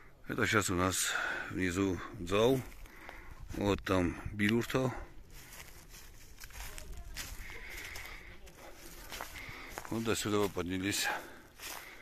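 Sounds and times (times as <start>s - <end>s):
footsteps crunching on dry leaves: 4.7s - 12.0s.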